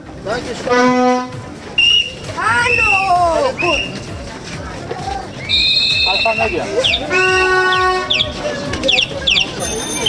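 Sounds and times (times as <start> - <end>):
crowd voices: 0.0 - 10.0
shrill whistle: 1.8 - 3.0, 5.4 - 6.6.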